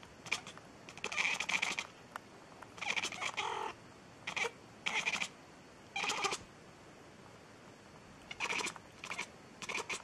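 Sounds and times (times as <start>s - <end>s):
cat calling and meowing: 0.2s - 1.9s, 2.8s - 5.4s, 6.0s - 6.5s, 8.3s - 10.0s.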